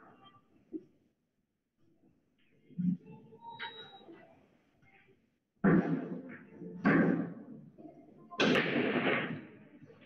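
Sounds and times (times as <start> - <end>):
loud knocks in echoing room: 5.6 - 7.5, 8.4 - 9.5.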